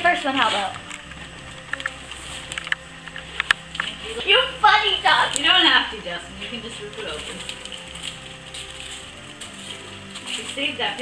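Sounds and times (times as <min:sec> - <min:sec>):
soft background music: 0:00.0 - 0:11.0
wrapping paper rustling: 0:00.0 - 0:11.0.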